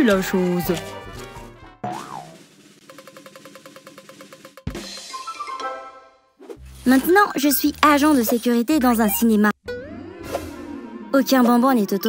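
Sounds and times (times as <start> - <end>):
wheel ticking drum-roll: 2.2 - 4.8.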